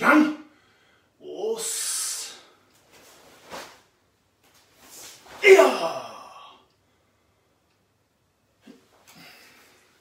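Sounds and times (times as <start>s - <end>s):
cloth swish: 2.8s - 5.8s
person shouting: 5.4s - 6.6s.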